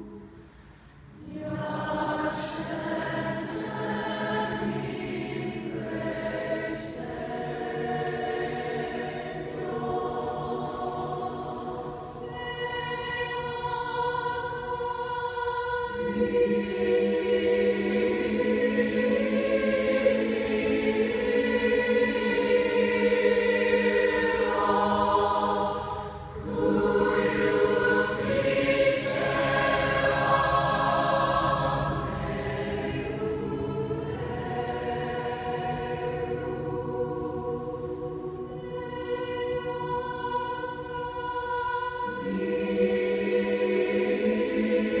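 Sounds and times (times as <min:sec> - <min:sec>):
choir singing sustained chords: 0:00.0 - 0:45.0.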